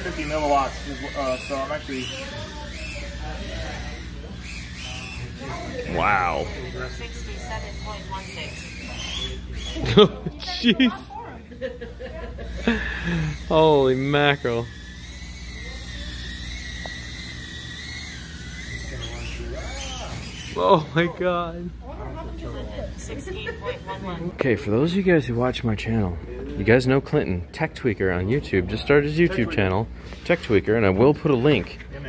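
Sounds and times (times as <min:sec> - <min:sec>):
quadcopter motors whining: 0:00.0 - 0:27.0
faint indistinct voices: 0:00.0 - 0:32.0
low room hum: 0:00.0 - 0:32.0.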